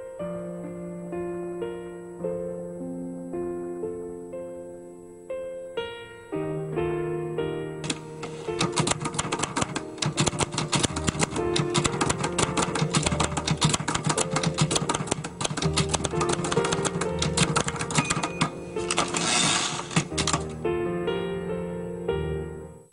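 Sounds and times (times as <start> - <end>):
sustained keyboard notes: 7.7 - 22.7
sharp clicks: 7.8 - 20.6.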